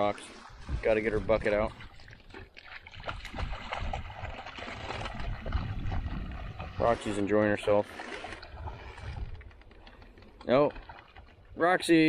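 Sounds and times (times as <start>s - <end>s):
dog splashing through water: 1.7s - 9.5s.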